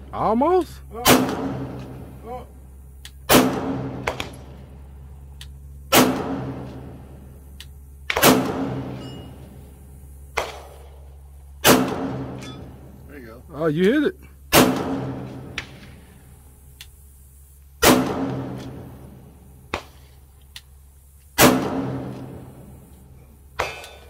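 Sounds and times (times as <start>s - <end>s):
faint gunshot: 1.0s - 2.0s, 3.3s - 4.6s, 5.9s - 6.9s, 8.1s - 9.0s, 10.3s - 11.0s, 11.6s - 12.4s, 14.5s - 16.0s, 17.8s - 18.9s, 19.7s - 20.1s, 21.4s - 22.6s, 23.6s - 24.0s
handgun shots with echo: 1.0s - 2.0s, 3.3s - 4.5s, 5.9s - 6.8s, 8.1s - 9.0s, 10.4s - 10.9s, 11.6s - 12.7s, 14.5s - 15.8s, 17.8s - 18.9s, 21.4s - 22.4s, 23.6s - 24.0s.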